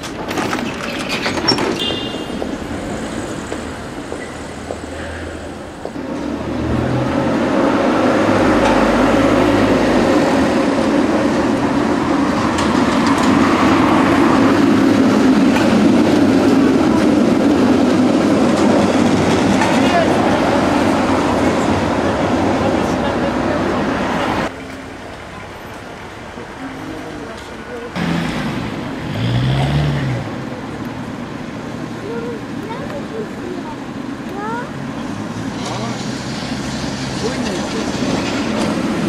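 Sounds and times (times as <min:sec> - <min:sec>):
tram wheels rumbling on rails: 0:00.0 - 0:39.0.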